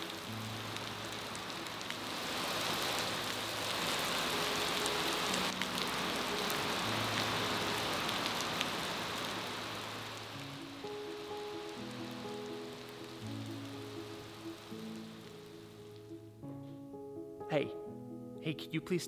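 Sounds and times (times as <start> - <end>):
heavy rain falling: 0.0 - 16.3
slow sad music: 0.0 - 19.0.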